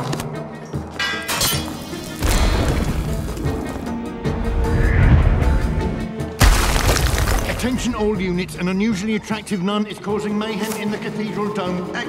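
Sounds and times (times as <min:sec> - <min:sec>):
dramatic orchestral music: 0:00.0 - 0:12.0.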